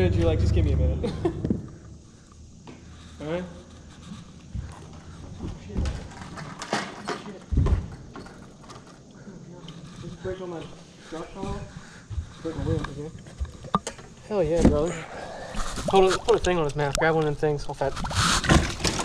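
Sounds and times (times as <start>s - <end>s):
man laughing: 0.7s - 1.8s.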